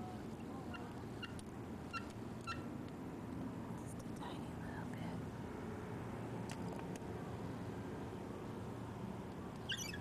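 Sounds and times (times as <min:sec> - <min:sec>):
bird chirping: 0:00.6 - 0:02.7, 0:09.6 - 0:10.0.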